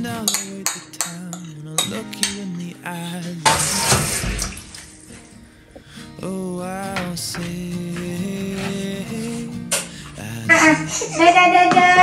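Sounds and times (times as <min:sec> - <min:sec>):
water pouring: 0:03.4 - 0:05.4.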